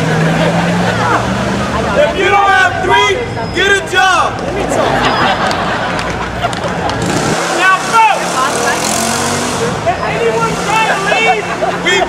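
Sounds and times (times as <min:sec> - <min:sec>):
crowd voices: 0:00.0 - 0:12.0
vehicle engine running: 0:05.4 - 0:12.0.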